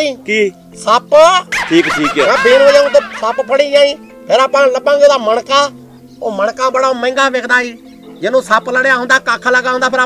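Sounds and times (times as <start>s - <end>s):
men talking: 0.0s - 10.0s
high yelping sound: 1.4s - 4.1s.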